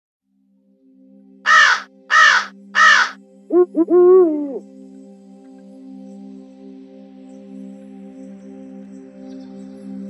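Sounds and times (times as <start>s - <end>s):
crow-like caws: 1.5s - 3.2s.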